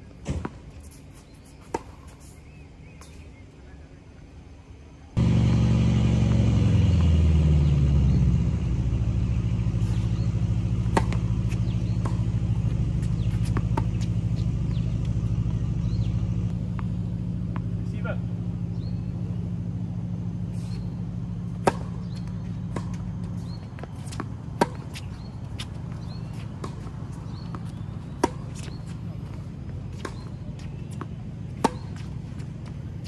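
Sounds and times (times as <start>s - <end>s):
tennis ball racket strikes: 9.6s - 16.0s, 21.6s - 29.1s, 29.9s - 32.5s.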